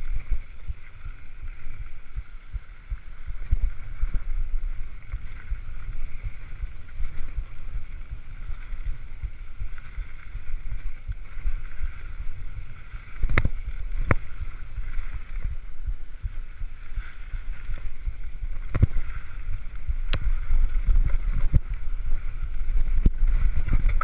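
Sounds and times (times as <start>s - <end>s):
bike tyres rumbling on dirt: 0.0s - 24.0s
wind buffeting microphone: 0.0s - 24.0s.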